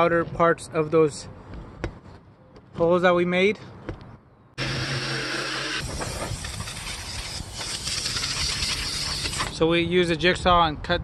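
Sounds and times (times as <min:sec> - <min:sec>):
jigsaw cutting sheet metal: 0:04.6 - 0:09.6.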